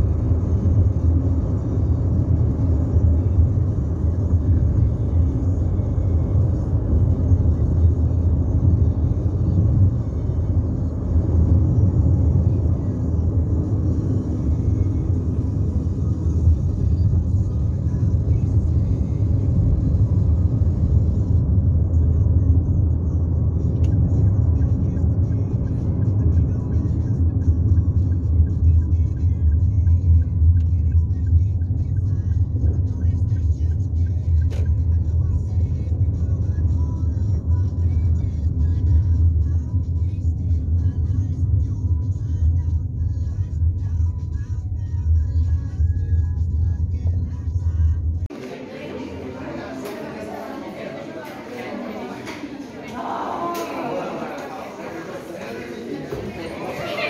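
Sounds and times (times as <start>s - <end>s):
low road rumble inside car: 0.0s - 48.3s.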